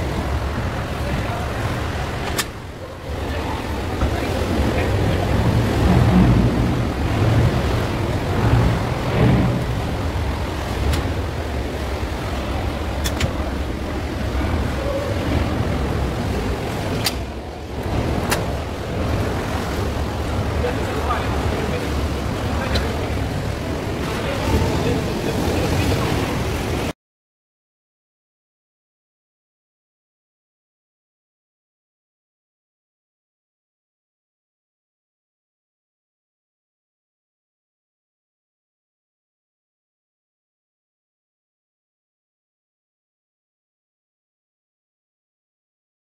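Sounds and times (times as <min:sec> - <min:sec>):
motorboat engine rumbling: 0:00.0 - 0:26.9.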